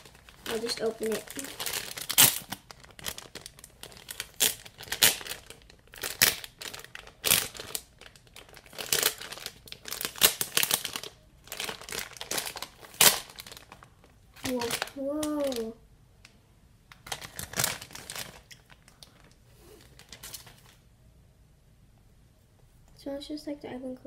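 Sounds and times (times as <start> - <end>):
plastic bag crinkling and tearing: 0.0 - 15.8, 16.9 - 20.8.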